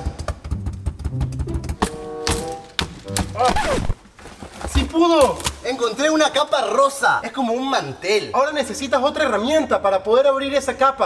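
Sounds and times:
background music with drum beat: 0.0 - 3.5.

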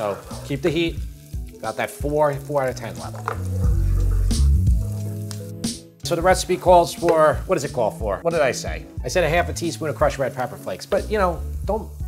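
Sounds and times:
wooden spoon scraping pan: 0.0 - 0.6
background music: 0.0 - 12.0
onions sizzling in oil: 0.0 - 12.0.

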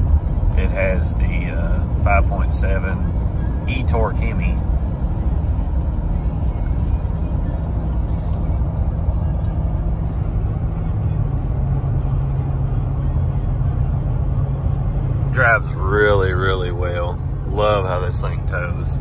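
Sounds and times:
road and drivetrain rumble: 0.0 - 19.0.

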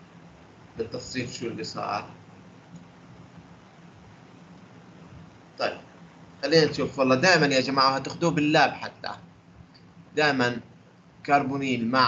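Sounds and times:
microphone hiss and hum: 0.0 - 12.0.

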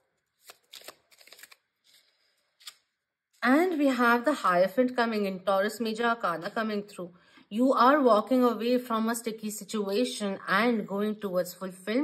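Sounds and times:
cards shuffling: 0.2 - 2.9.

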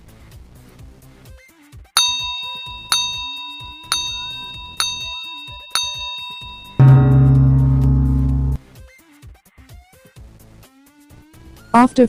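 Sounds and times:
bell-like ding: 2.0 - 8.6.

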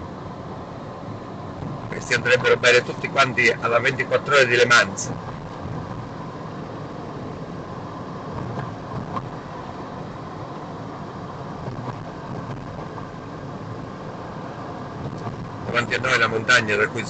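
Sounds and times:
car cabin road noise: 0.0 - 17.0.

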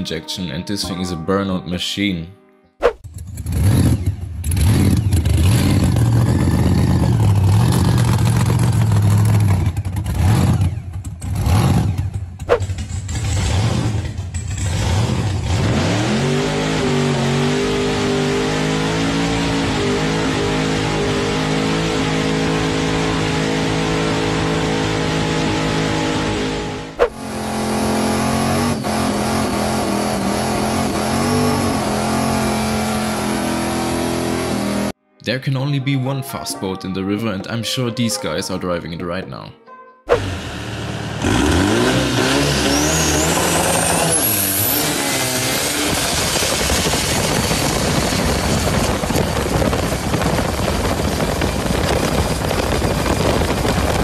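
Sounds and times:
supercharged car engine revving: 3.0 - 35.0, 40.1 - 54.0.

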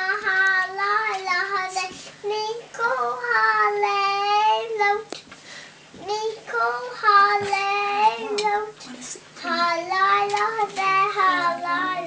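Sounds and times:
children singing together: 6.0 - 8.8, 9.4 - 12.0.

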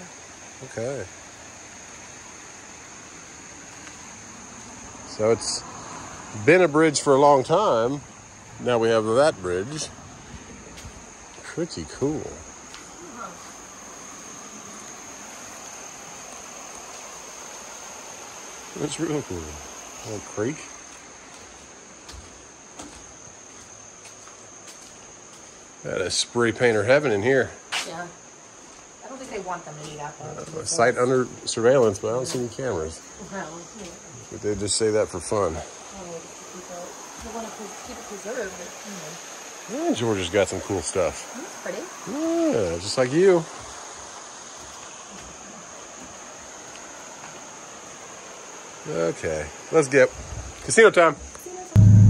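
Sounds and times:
creek water rushing: 0.0 - 25.8, 35.0 - 50.0
insects trilling: 0.0 - 52.0
footsteps on wooden planks: 20.8 - 25.6
thin high-pitched drone: 51.8 - 52.0.

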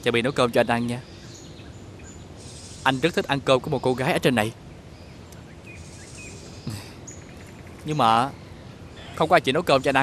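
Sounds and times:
man speaking: 0.0 - 1.0, 2.9 - 4.6, 6.7 - 7.0, 7.9 - 8.3, 9.1 - 10.0
outdoor background hiss: 0.0 - 10.0
high bird chirps: 0.2 - 10.0.

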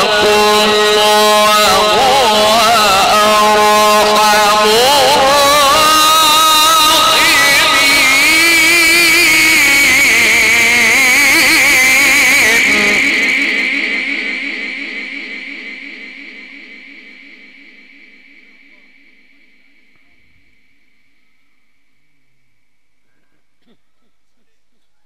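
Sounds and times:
man reciting melodically over speakers: 0.0 - 17.2
sound system echo: 0.0 - 25.0.

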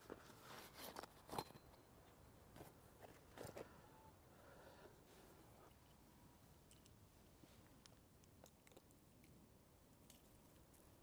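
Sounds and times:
camping gear clicks and knocks: 0.0 - 3.7.

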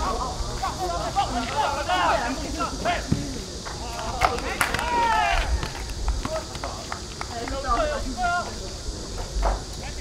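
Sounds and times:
players shouting: 0.0 - 6.9.

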